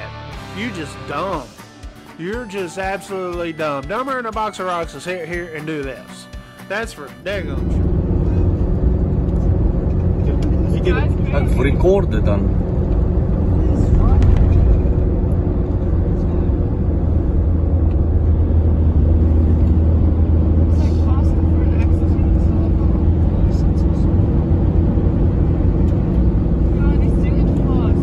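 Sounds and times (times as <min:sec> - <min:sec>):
vehicle driving at highway speed: 0:07.3 - 0:28.0.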